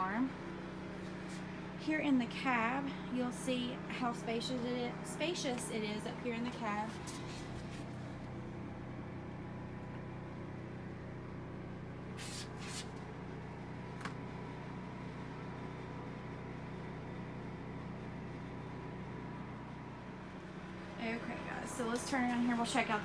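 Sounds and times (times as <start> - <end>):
low machine hum: 0.0 - 23.0.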